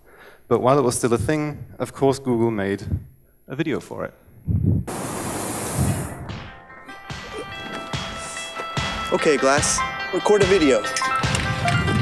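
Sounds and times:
balloon burner rushing hiss: 4.9s - 6.3s
background music: 5.6s - 12.0s.

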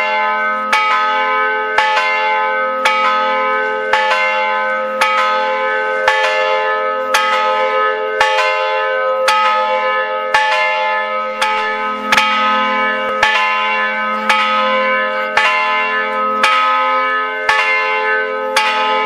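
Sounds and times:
church bell tolling: 0.0s - 19.0s.

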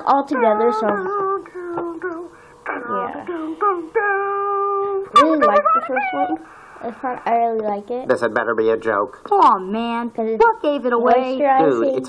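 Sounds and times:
soft hiss: 6.4s - 10.8s.

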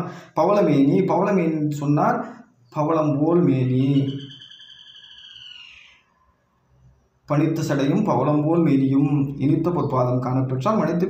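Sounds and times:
high steady whistling tone: 3.8s - 5.9s.

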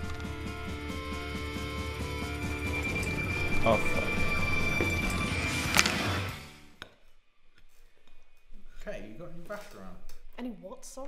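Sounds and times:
tense film score: 0.0s - 6.8s
sharp orchestral hit: 2.2s - 6.7s.

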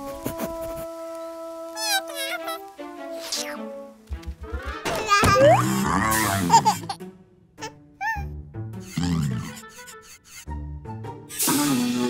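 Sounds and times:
background music with held notes: 0.0s - 12.0s
cartoon squirrel squeaky cry: 7.6s - 10.5s.

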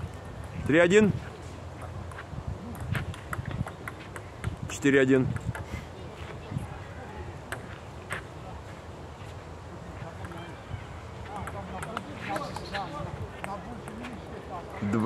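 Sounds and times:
faint voices: 3.6s - 15.0s
table tennis ball clicking: 11.4s - 12.4s.

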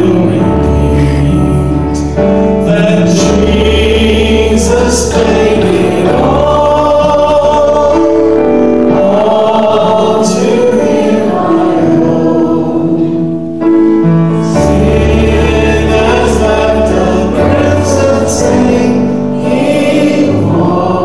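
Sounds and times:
group singing a hymn: 0.0s - 21.0s.

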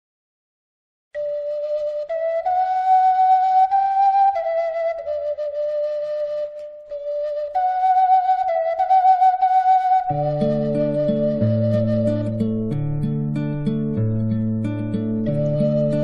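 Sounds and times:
solo flute slow melody: 1.2s - 12.8s, 15.2s - 16.0s.

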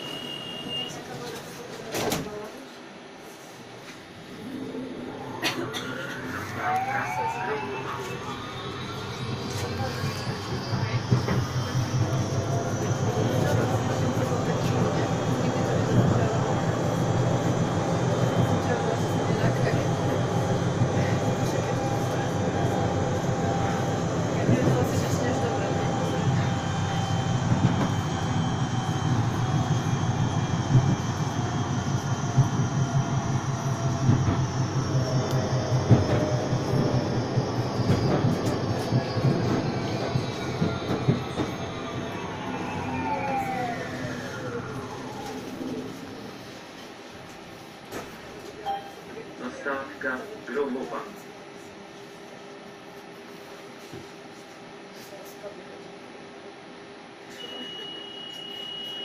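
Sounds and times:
tram motor whine: 3.9s - 49.9s
tram wheels rumbling on rail: 4.1s - 48.6s.

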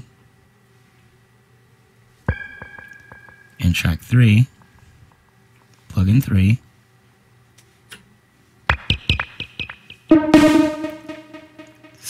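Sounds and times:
choppy synthesizer notes: 10.1s - 12.0s
held high synth tone: 10.1s - 12.0s.

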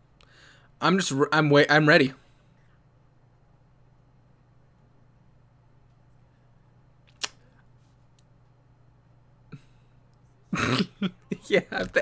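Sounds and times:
man stifling laughter: 10.6s - 12.0s.

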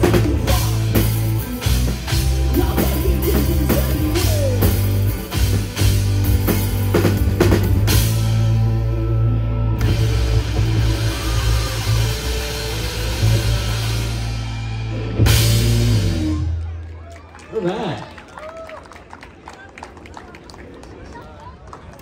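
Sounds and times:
drums hitting hard: 0.0s - 8.6s, 9.8s - 16.3s
live rock band playing: 0.0s - 16.6s.

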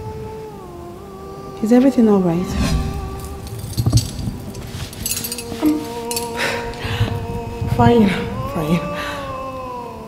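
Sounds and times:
film score held tones: 0.0s - 10.0s
clinking jangle: 3.0s - 6.9s.

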